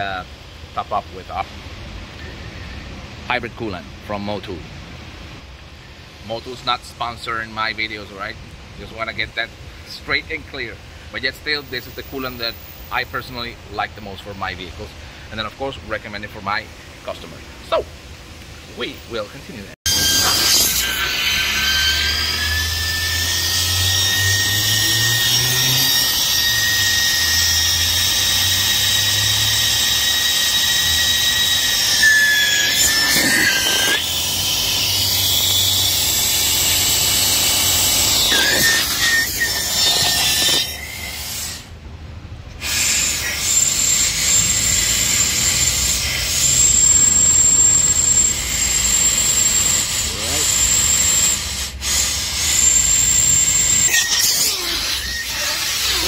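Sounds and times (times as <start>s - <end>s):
compressed air hissing with whistle: 20.0s - 41.7s, 42.6s - 56.0s.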